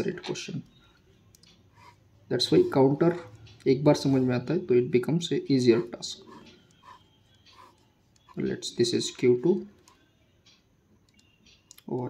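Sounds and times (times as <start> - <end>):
pen writing on paper: 1.7 - 2.0, 5.7 - 8.4.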